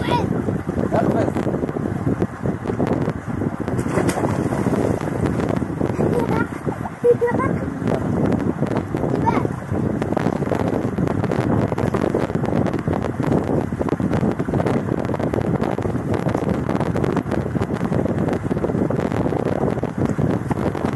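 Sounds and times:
wind buffeting microphone: 0.0 - 20.9
water splashing in pool: 3.7 - 7.8.

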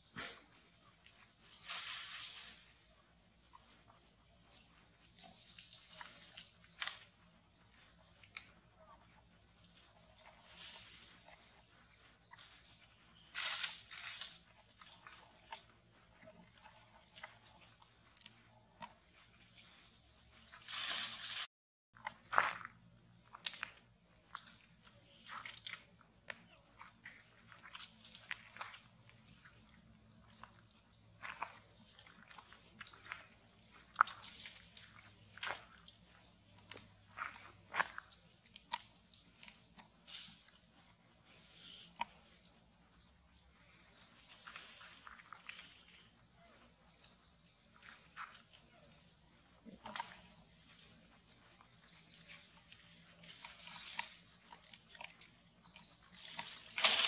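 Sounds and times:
leaves and twigs crackling: 0.6 - 57.0.

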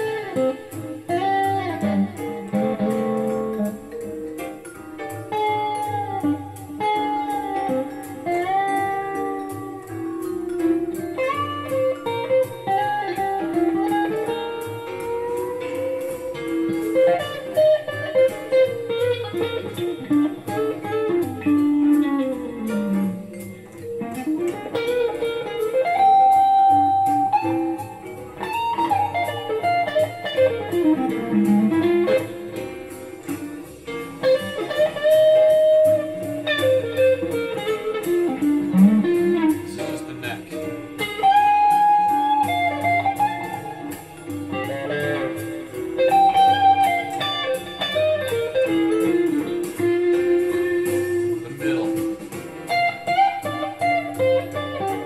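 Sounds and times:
electric guitar blues lead: 0.0 - 55.0.

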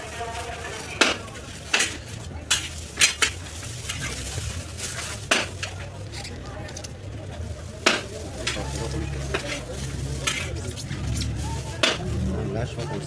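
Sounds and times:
utensils and containers clattering: 0.0 - 6.4, 7.8 - 12.3.

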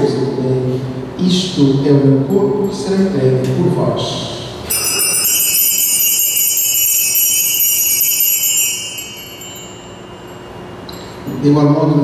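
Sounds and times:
altar bells ringing: 4.6 - 12.0.

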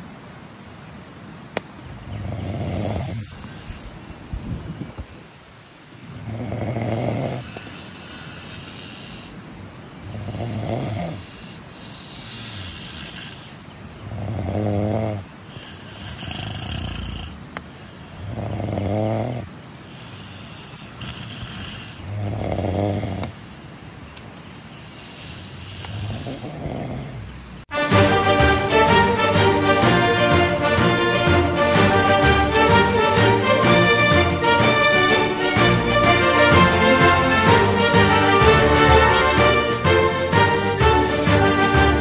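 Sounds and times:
loud deep snore: 2.1 - 4.1, 6.1 - 9.4, 10.0 - 17.4, 18.1 - 23.4, 24.6 - 27.5
softer higher snore: 2.1 - 4.1, 6.2 - 23.7, 24.6 - 27.4.

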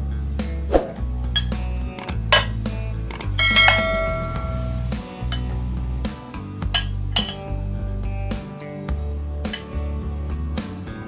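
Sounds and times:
quick click: 1.9 - 2.2, 3.1 - 3.4
notification bell ding: 3.4 - 4.9.

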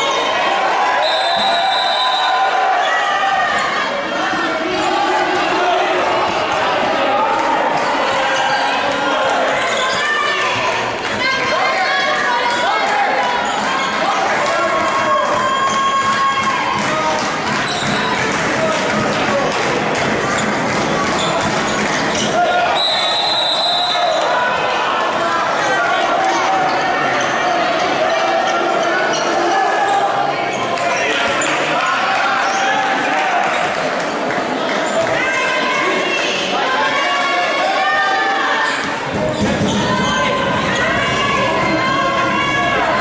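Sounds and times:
players shouting: 0.0 - 43.0.

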